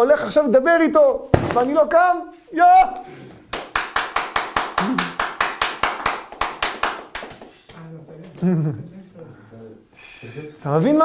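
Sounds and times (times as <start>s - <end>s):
hands clapping: 3.5s - 7.9s.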